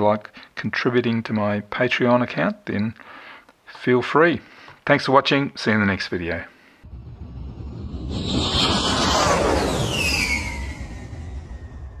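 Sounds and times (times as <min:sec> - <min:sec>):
whoosh with low rumble: 0:06.8 - 0:12.0
whistle-like descending tone: 0:07.9 - 0:12.0.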